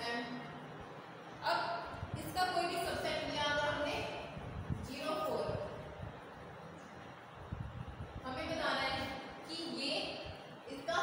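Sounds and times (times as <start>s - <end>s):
woman speaking: 0.0s - 0.6s, 1.4s - 5.8s, 8.2s - 11.0s.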